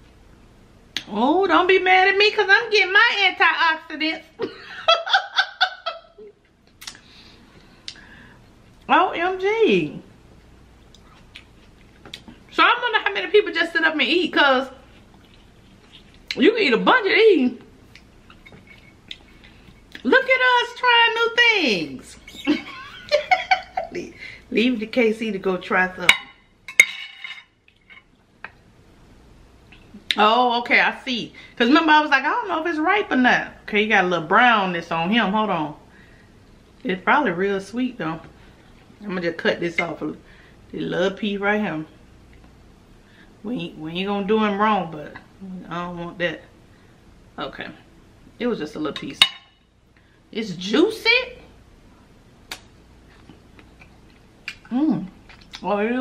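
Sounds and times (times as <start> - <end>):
wet mouth click: 6.7 - 7.0, 52.5 - 52.7
knife clinking on platter: 26.1 - 27.5.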